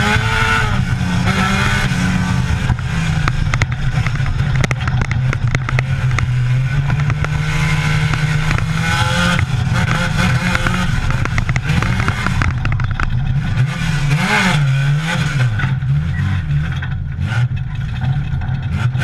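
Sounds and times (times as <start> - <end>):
chassis rattling: 0.0 - 19.0
race car engine revving: 0.0 - 19.0.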